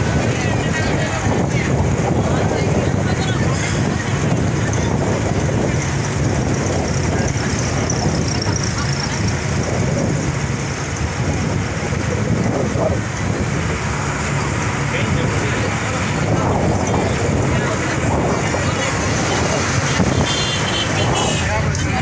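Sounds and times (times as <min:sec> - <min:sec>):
low engine hum: 0:00.0 - 0:20.8
indistinct voices: 0:00.0 - 0:22.0
road and wind noise: 0:00.0 - 0:22.0.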